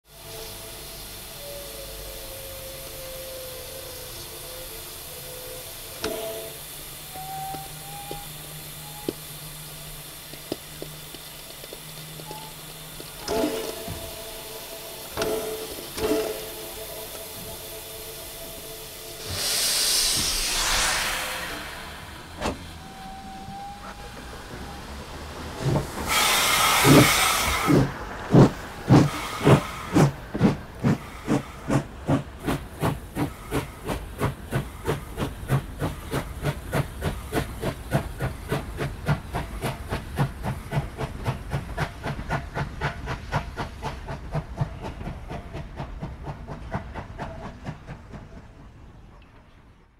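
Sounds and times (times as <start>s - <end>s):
steady hiss of steam: 0.0s - 48.6s
loud burst of venting steam: 0.1s - 45.4s.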